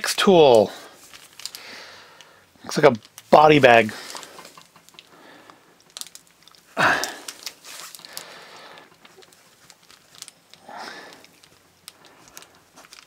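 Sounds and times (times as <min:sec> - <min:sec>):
breaths through the nose: 0:00.8 - 0:02.5, 0:06.8 - 0:09.0, 0:10.6 - 0:12.6
plastic pouch crinkling: 0:00.9 - 0:13.0.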